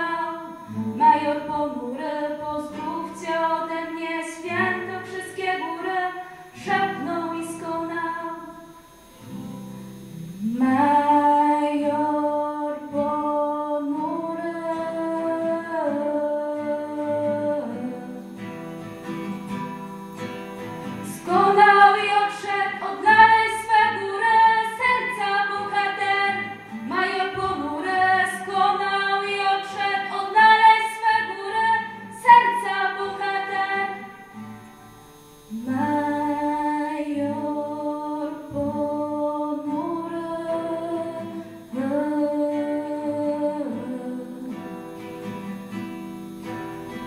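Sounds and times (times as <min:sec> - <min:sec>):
people singing: 0:00.0 - 0:18.5, 0:20.6 - 0:34.6, 0:35.3 - 0:45.1
acoustic guitar: 0:00.0 - 0:47.0.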